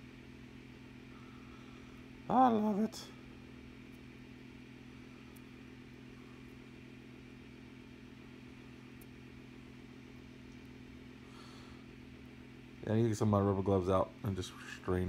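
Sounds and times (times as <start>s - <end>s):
quiet low hum: 0.0s - 15.0s.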